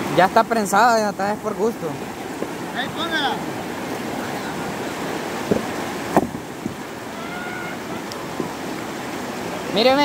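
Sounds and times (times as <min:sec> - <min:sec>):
river water rushing over rocks: 0:00.0 - 0:10.0.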